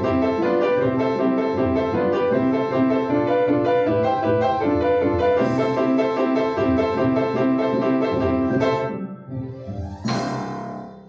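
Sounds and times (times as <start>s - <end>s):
accented piano chord: 0.0s - 11.0s
upright piano playing: 0.0s - 11.0s.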